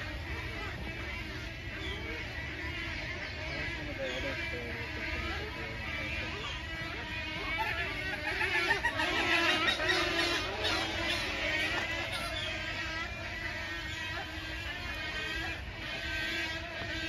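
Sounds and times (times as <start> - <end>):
flock of birds squawking and chirping: 0.0 - 17.0.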